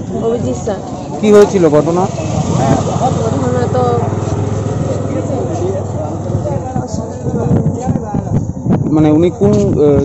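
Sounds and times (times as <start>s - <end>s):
low engine hum: 0.8s - 7.7s.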